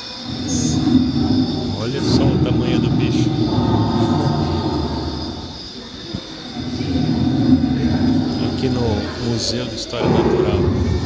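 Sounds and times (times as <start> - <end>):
deep low dinosaur growl: 0.0 - 11.0.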